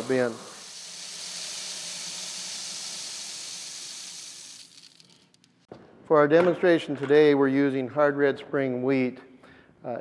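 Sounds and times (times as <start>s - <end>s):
grain pouring into metal bin: 0.0s - 5.2s.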